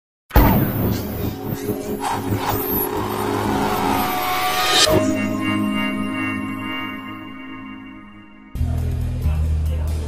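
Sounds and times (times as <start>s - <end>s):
noisy whoosh: 0.4s - 8.6s
high falling sweep: 0.7s - 8.6s.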